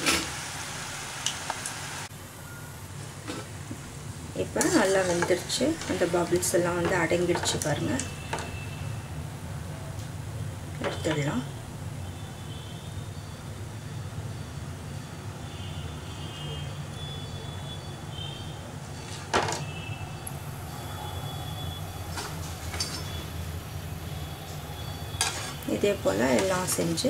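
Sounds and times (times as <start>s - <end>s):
hot oil sizzling: 0.0s - 2.2s, 2.8s - 9.2s, 20.3s - 27.0s.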